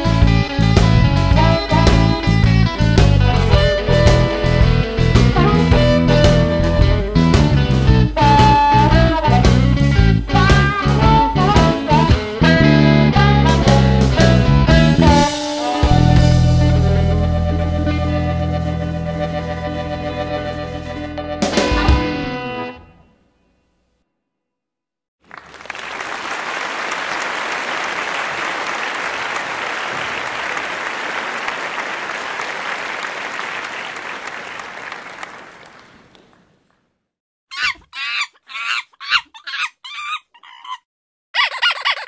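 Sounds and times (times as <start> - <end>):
applause-like noise: 25.2 - 36.8
short squawking calls: 37.5 - 40.8.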